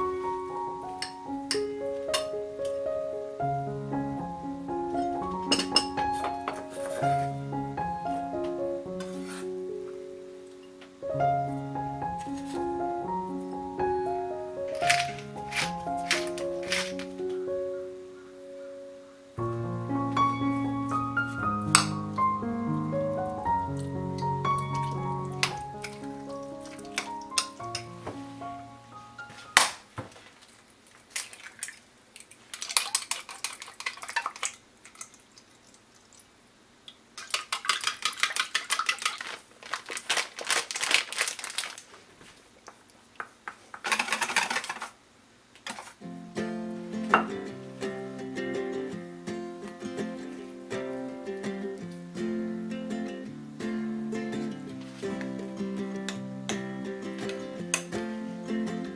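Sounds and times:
keyboard music: 0.0s - 29.6s
pepper mill grinding: 14.7s - 17.2s, 37.2s - 41.8s, 43.8s - 45.0s
utensil beating eggs in metal bowl: 37.2s - 39.4s.

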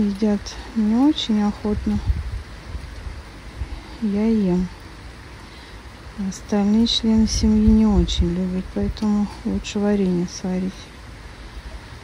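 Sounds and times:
light rain hiss: 0.0s - 12.0s
wind rumbling on microphone: 0.0s - 12.0s.

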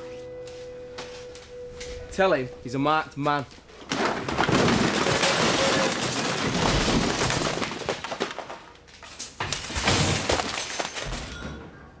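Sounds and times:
things clattering and smashing: 3.8s - 11.9s.

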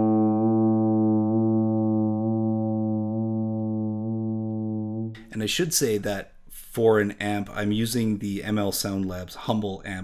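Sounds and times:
electric guitar chord with vibrato: 0.0s - 5.2s.

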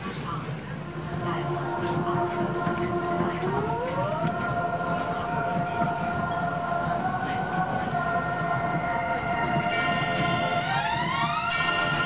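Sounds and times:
subway train rumble: 0.0s - 12.0s
train whine: 0.0s - 12.0s
music: 0.5s - 12.0s.

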